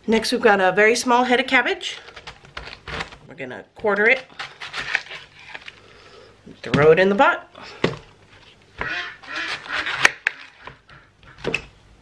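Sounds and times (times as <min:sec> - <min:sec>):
knife cutting cabbage: 0:02.0 - 0:03.2, 0:03.8 - 0:05.7, 0:08.8 - 0:11.4.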